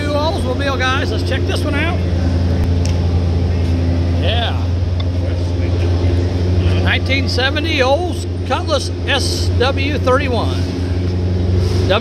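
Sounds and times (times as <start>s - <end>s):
low hum of indoor hall: 0.0s - 12.0s.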